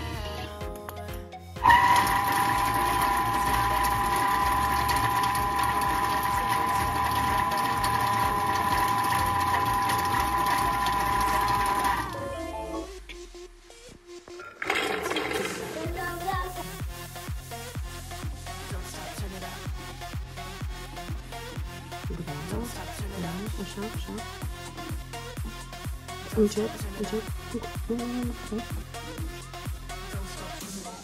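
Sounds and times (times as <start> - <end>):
food processor motor whining: 1.6 - 12.3, 14.4 - 16.0.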